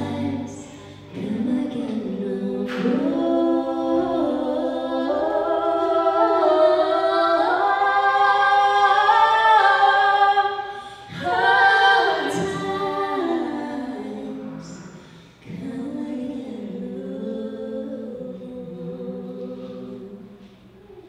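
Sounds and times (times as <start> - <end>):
women singing without accompaniment: 0.0 - 20.5.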